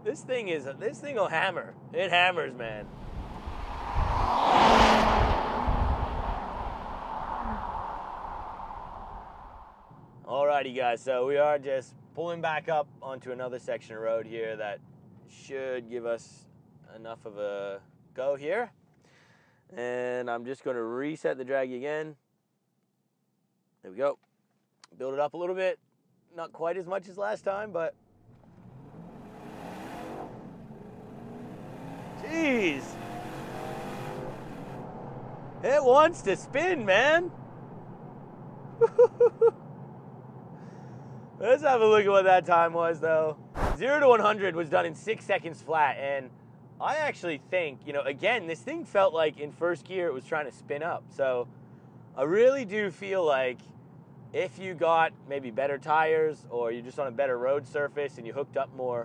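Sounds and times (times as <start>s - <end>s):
car driving past: 2.7s - 9.9s, 28.1s - 38.8s
tyre noise: 32.1s - 33.3s, 43.6s - 43.8s.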